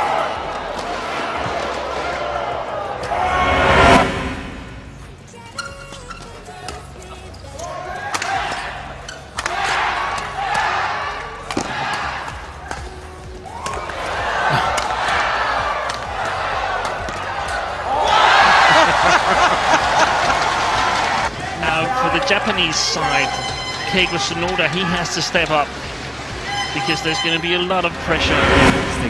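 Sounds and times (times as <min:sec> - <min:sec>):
crowd cheering: 0:00.0 - 0:04.6, 0:07.8 - 0:29.0
shoes squeaking on court: 0:05.5 - 0:07.8
rackets hitting shuttlecock: 0:09.3 - 0:10.7, 0:11.5 - 0:13.0.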